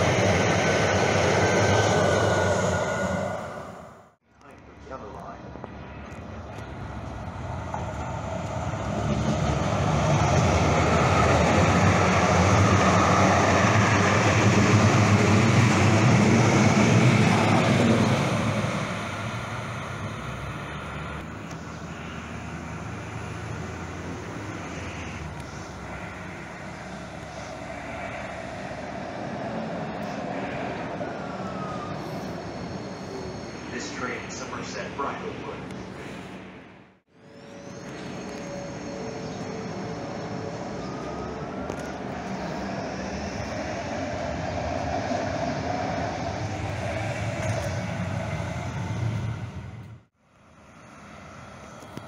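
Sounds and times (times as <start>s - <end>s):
light rail train rumble: 0.0s - 52.0s.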